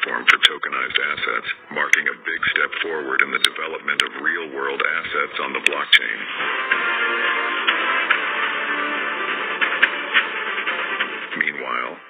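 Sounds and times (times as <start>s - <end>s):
narrator talking: 0.0s - 6.3s, 11.3s - 12.0s.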